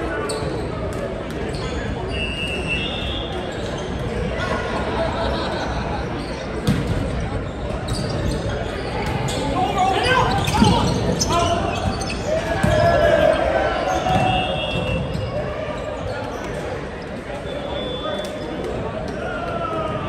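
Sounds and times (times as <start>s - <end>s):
murmur of voices: 0.0s - 20.0s
players calling out: 8.0s - 16.5s.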